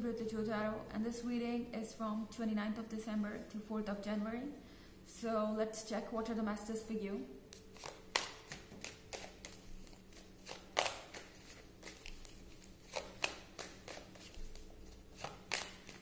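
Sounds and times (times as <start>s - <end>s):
sharp card snaps: 7.5s - 9.6s, 10.4s - 14.6s, 15.2s - 16.0s
cards being shuffled: 7.5s - 16.0s.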